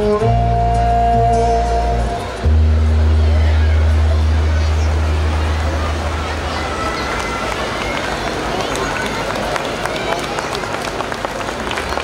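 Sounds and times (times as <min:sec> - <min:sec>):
deep bass tone from loudspeakers: 0:00.0 - 0:06.7
audience chatter: 0:00.0 - 0:12.0.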